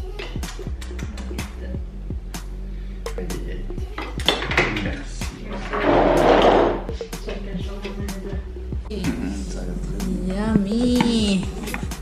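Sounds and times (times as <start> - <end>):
background music: 0.0 - 12.0
loud scraping noise: 5.5 - 6.9.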